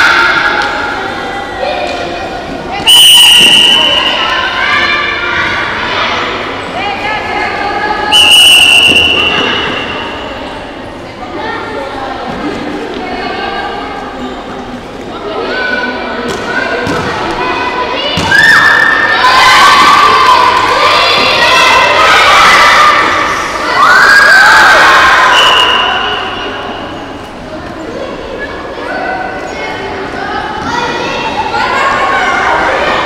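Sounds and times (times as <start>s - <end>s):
children shouting and cheering: 17.6s - 25.4s.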